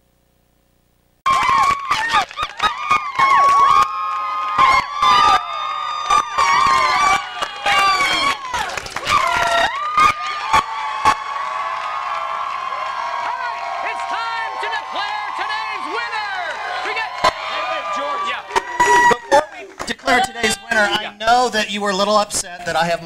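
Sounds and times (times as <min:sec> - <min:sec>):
crowd cheering and whooping: 0:01.2 - 0:21.1.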